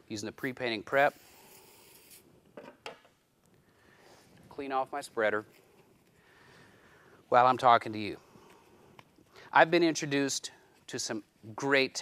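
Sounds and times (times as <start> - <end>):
aerosol can spraying: 1.1 - 2.3.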